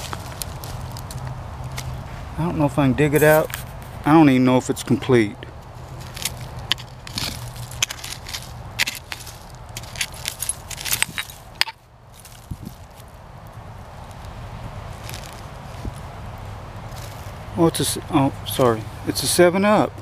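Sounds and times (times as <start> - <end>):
digging tool scraping dirt: 5.8 - 13.0.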